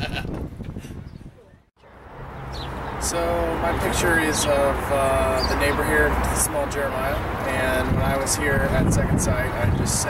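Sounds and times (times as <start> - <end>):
man laughing heartily: 0.0 - 1.0.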